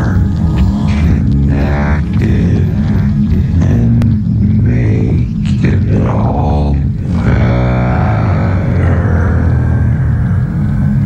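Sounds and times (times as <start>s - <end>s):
distorted glitchy tones: 0.0s - 11.0s
heavy low drone: 0.0s - 11.0s.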